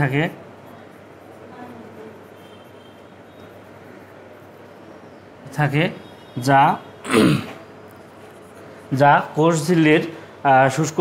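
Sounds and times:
man clearing throat: 0:07.0 - 0:07.6.

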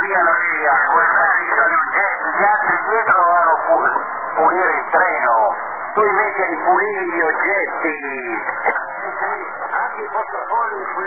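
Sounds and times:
men talking over radio: 0:00.0 - 0:11.0.

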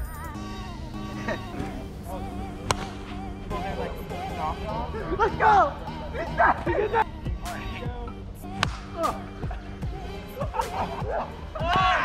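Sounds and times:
background music: 0:00.0 - 0:12.0
voices: 0:00.0 - 0:12.0
plastic bat hitting ball: 0:02.6 - 0:03.0, 0:08.6 - 0:08.9.

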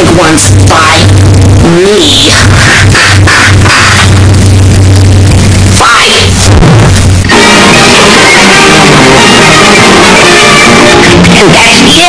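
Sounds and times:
harsh static noise: 0:00.0 - 0:12.0
low drone: 0:00.0 - 0:12.0.

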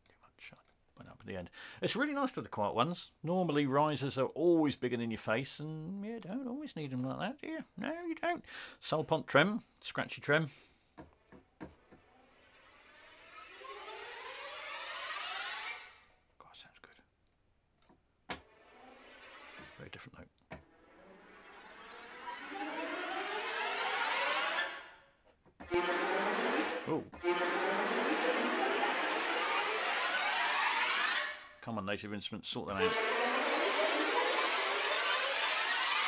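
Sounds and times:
string tremolo risers: 0:11.7 - 0:16.1, 0:18.4 - 0:25.1, 0:25.7 - 0:31.6, 0:32.7 - 0:36.0.

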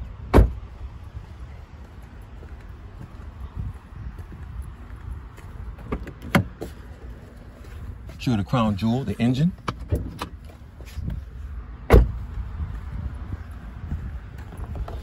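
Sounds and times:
steady low rumble: 0:00.0 - 0:15.0
car door slamming: 0:00.3 - 0:00.6, 0:05.8 - 0:06.6, 0:11.9 - 0:12.2.

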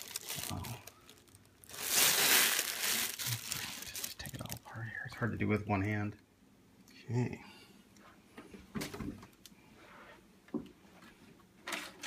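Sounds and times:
packing wrap rustling and crinkling: 0:00.0 - 0:04.7.

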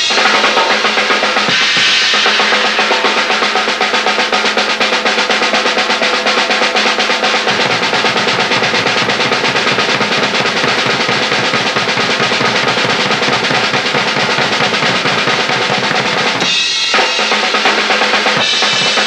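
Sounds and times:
cymbal wash: 0:00.0 - 0:19.0
rapid bass drum strokes: 0:00.0 - 0:19.0
snare and tom strokes: 0:00.0 - 0:19.0.

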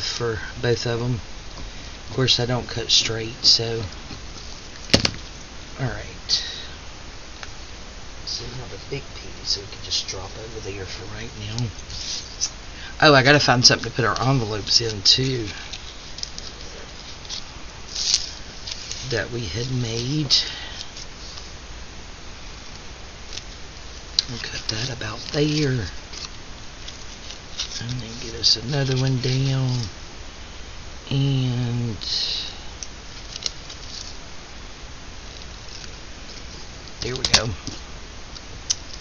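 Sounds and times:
paper rustling on table: 0:11.7 - 0:12.5, 0:13.6 - 0:20.2, 0:24.3 - 0:29.9, 0:33.1 - 0:34.2.

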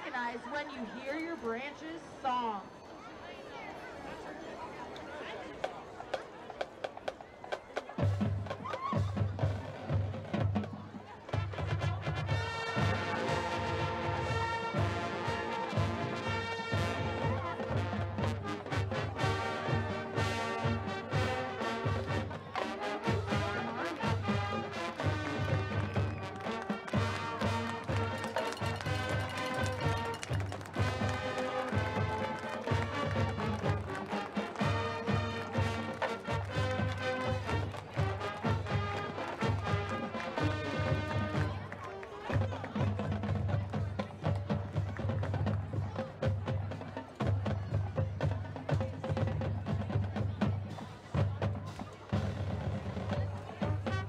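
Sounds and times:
marching band playing: 0:06.0 - 0:54.0
brass and woodwinds: 0:11.3 - 0:43.8, 0:51.6 - 0:54.0.

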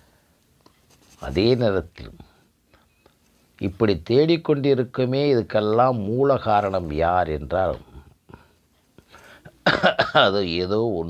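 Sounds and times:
man speaking: 0:01.2 - 0:02.3, 0:03.6 - 0:08.2, 0:10.1 - 0:11.0.

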